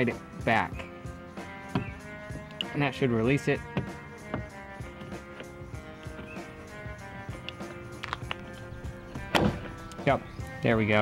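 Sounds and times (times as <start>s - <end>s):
background music: 0.0s - 11.0s
car door handle clicks: 9.3s - 10.0s.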